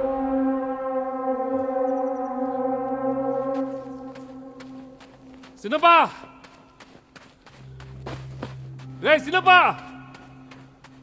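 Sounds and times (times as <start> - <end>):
sustained droning note: 0.0 - 11.0.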